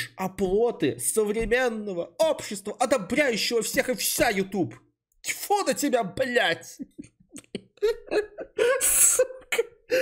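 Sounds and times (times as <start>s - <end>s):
man laughing: 6.6s - 10.0s.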